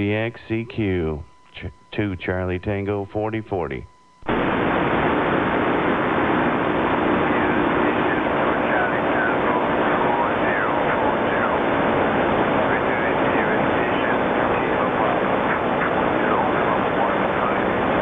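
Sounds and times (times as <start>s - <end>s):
faint warbling radio voices: 0.0s - 4.0s, 5.8s - 18.0s
radio static hiss: 0.0s - 18.0s.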